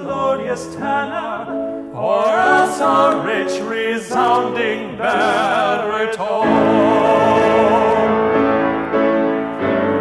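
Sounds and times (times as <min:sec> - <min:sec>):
grand piano chords ringing: 0:00.0 - 0:10.0.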